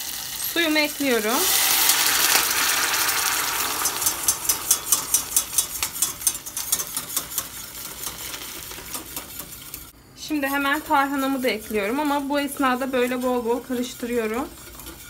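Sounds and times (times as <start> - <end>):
water pouring into hot oil: 0.0 - 5.3
oil sizzling: 0.0 - 15.0
whisk clicking against pan: 3.7 - 15.0.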